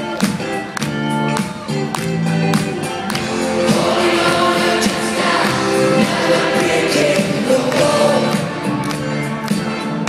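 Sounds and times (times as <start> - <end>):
live rock band playing: 0.0 - 10.0
group vocals: 3.2 - 8.8.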